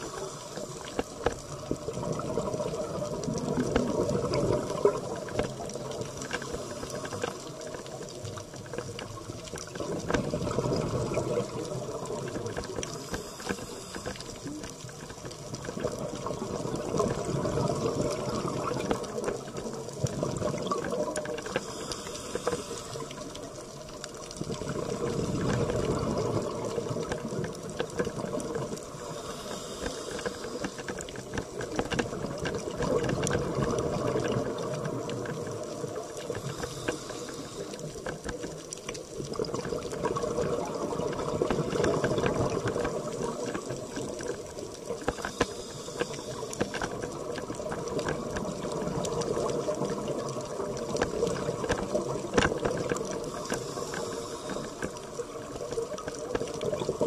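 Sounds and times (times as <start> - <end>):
diver breathing underwater: 0.0 - 1.4, 10.5 - 14.7, 20.3 - 23.2, 28.9 - 31.2, 36.2 - 38.4, 45.0 - 47.1, 52.8 - 55.2
air bubbles rising: 1.5 - 6.0, 9.8 - 12.6.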